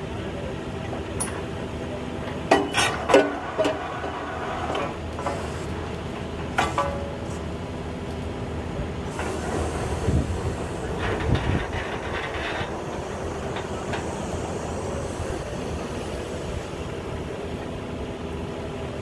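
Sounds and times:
drilling rig rumbling: 0:09.0 - 0:18.2.

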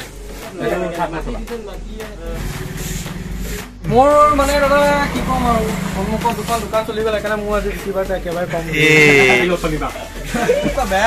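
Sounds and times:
voices talking: 0:00.5 - 0:10.9
vehicle engine running: 0:02.2 - 0:08.7.

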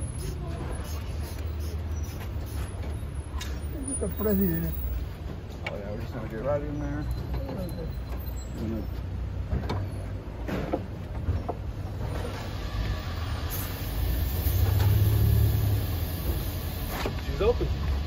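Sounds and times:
hiss: 0:00.0 - 0:02.7, 0:12.2 - 0:17.1
vehicle engine rumbling: 0:00.0 - 0:18.0.

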